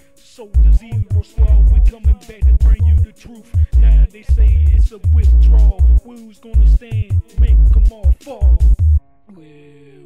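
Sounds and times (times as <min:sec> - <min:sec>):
rapping over a beat: 0:00.0 - 0:10.0
heavy bass hits: 0:00.6 - 0:06.0, 0:06.6 - 0:09.0.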